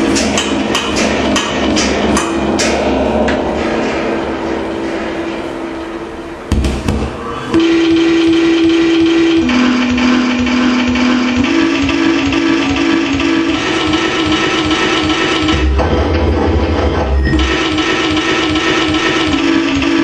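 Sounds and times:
deep rumble: 0:00.0 - 0:18.0
dense wash of noise: 0:00.0 - 0:18.2
low droning tone: 0:00.4 - 0:18.6.

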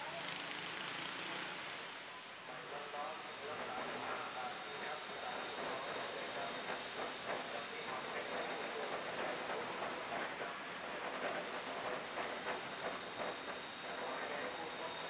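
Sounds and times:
high-pitched train squeals: 0:03.1 - 0:15.0
train rushing rumble: 0:05.4 - 0:15.0.

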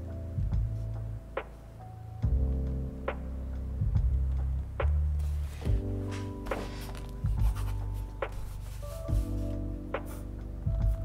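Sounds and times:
lofi music: 0:00.0 - 0:11.0
soft kick drum: 0:00.4 - 0:01.5, 0:02.2 - 0:03.2, 0:03.8 - 0:05.0, 0:05.6 - 0:11.0
ballpoint pen scratching on paper: 0:05.2 - 0:10.2.

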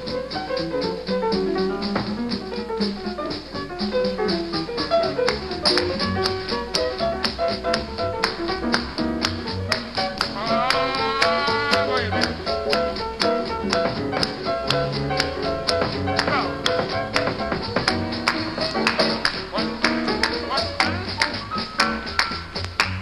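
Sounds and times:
jazz band playing latin groove: 0:00.0 - 0:23.0
sharp drum and percussion strokes: 0:00.0 - 0:23.0.

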